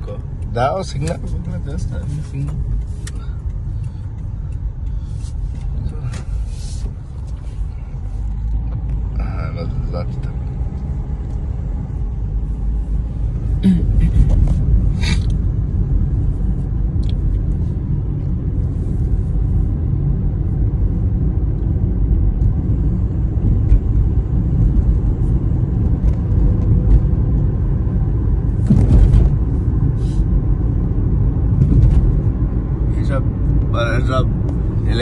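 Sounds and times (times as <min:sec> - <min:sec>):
car road and engine rumble: 0:00.0 - 0:35.0.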